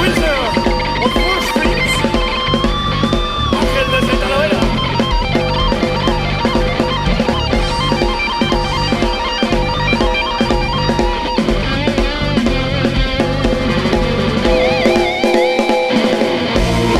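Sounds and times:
drum kit beat: 0.0 - 16.9
electric guitar playing: 0.0 - 16.9.

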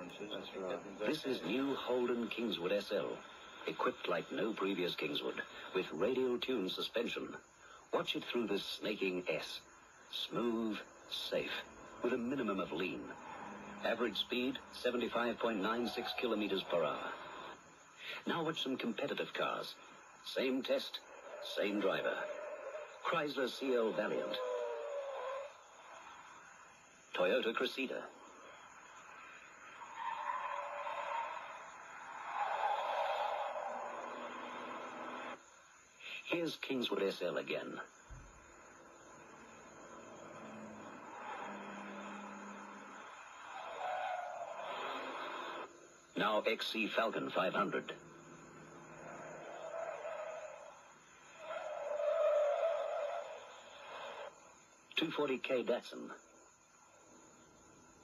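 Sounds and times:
faint hiss: 0.0 - 58.0
car tyres squealing: 9.9 - 17.8, 19.8 - 26.8, 28.1 - 35.6, 38.1 - 46.1, 47.2 - 54.7.

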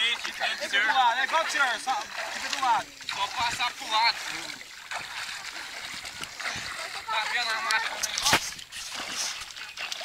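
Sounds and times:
hands scooping water: 0.0 - 10.0
water splashing and trickling: 0.0 - 10.0.

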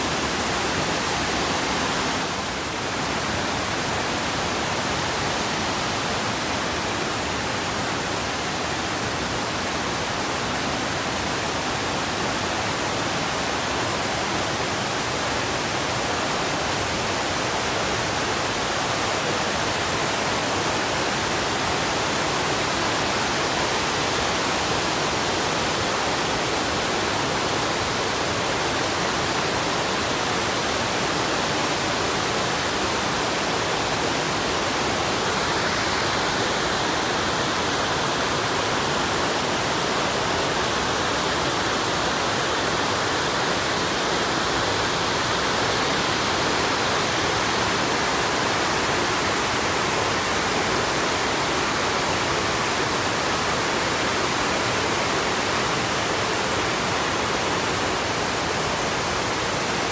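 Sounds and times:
rapids pouring over bedrock: 0.0 - 59.9
waterfall rushing: 0.0 - 59.9.

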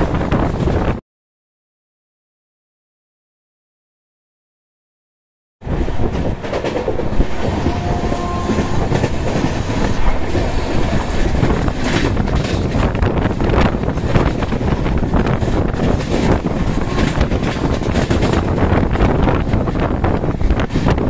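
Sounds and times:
train running on track: 0.0 - 1.0, 5.6 - 21.0.

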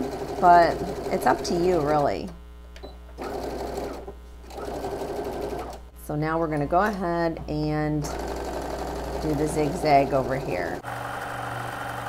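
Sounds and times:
sewing machine stitching: 3.2 - 5.8.

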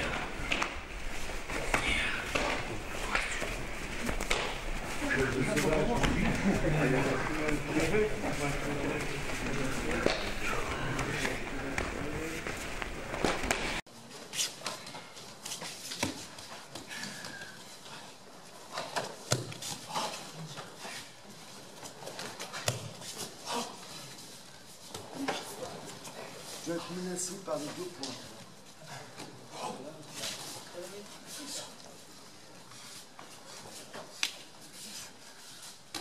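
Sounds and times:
overlapping voices: 0.0 - 13.8.

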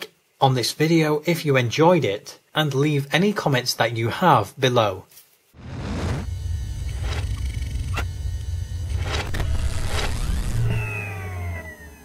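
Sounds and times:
steady low synthesized rumble: 5.6 - 10.8.

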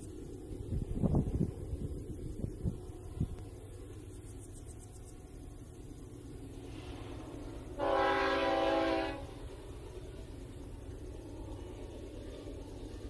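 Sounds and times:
steady low rumble: 0.0 - 13.0
distant locomotive horn blast: 7.7 - 9.5.

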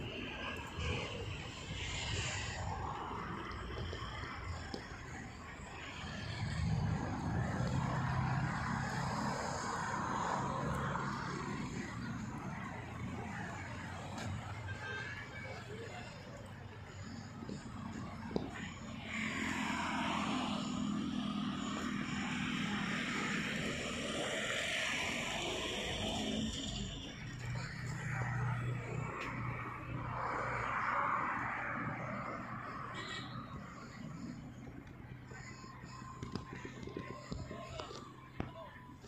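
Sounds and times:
vehicle engine humming: 0.0 - 39.0.

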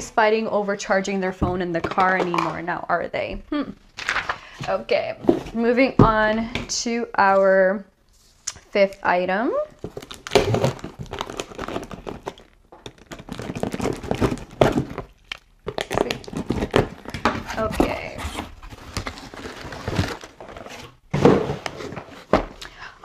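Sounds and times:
contents rustling and crinkling: 3.9 - 6.7, 9.6 - 23.0.

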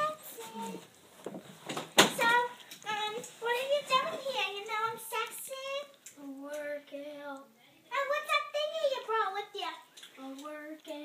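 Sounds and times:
child singing unaccompanied: 0.0 - 0.9, 2.0 - 11.0.

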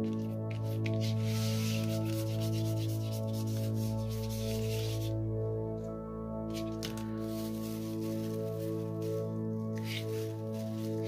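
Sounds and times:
background music: 0.0 - 11.0
cloth rag scrubbing paper: 0.1 - 5.2, 6.5 - 11.0.

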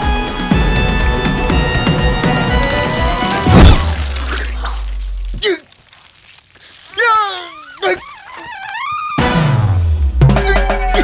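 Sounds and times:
music: 0.0 - 4.0, 9.2 - 11.0
man wailing and whimpering: 7.0 - 9.4.

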